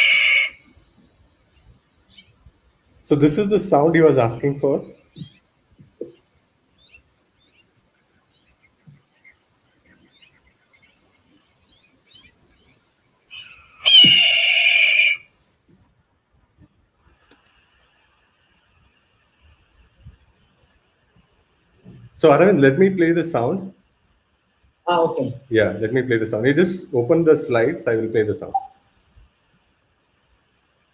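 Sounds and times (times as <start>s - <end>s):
hawk screaming: 0.0s - 0.7s, 13.3s - 15.3s.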